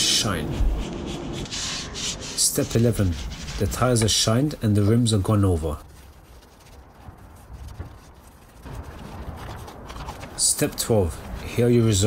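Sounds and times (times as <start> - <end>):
cloth rubbing over tyre: 0.0 - 12.0.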